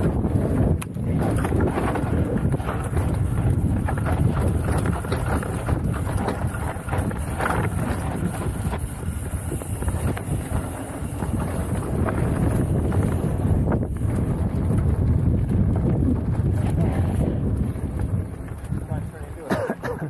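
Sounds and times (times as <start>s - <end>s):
bike knocks and rattles: 0.0s - 20.0s
tyre roar on dirt: 0.0s - 20.0s
wind buffeting microphone: 0.0s - 20.0s.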